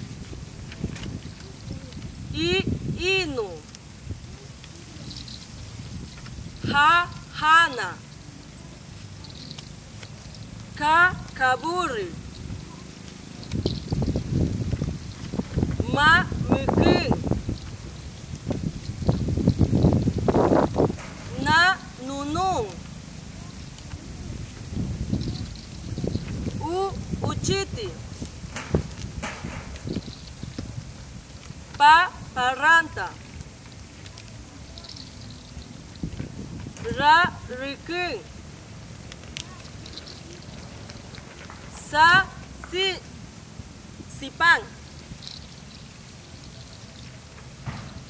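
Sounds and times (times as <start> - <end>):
faint hiss: 0.0 - 48.0
low outdoor rumble: 0.0 - 48.0.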